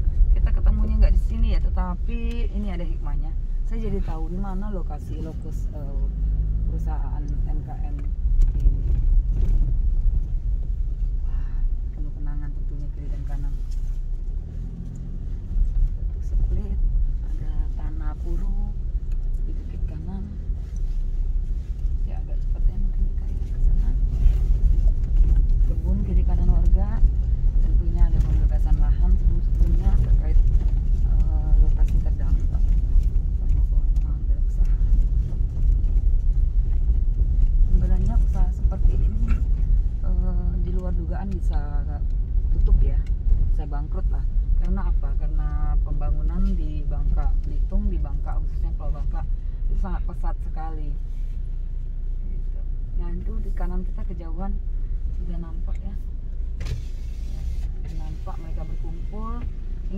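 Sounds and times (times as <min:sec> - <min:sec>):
car driving on dirt road: 0:00.0 - 0:59.9
person's voice: 0:00.4 - 0:08.0, 0:27.6 - 0:30.4, 0:31.0 - 0:32.7.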